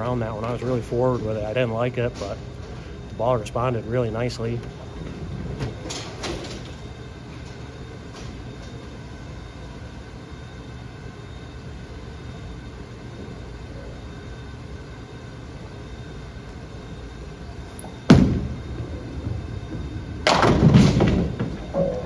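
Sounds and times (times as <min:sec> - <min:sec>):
rumble from bowling lanes: 0:00.0 - 0:08.6, 0:17.8 - 0:22.0.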